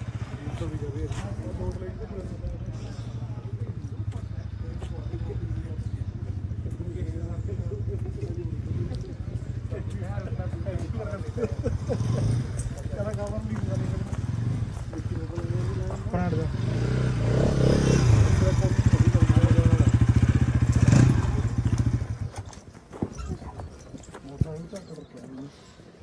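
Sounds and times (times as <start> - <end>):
motorcycle engine droning: 0.0 - 22.5.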